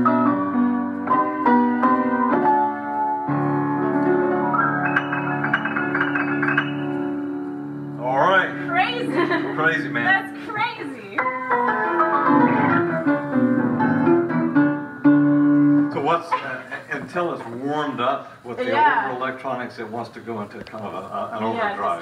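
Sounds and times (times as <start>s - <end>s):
electric piano chords: 0.0s - 17.8s
person speaking: 8.0s - 11.2s, 15.9s - 22.0s.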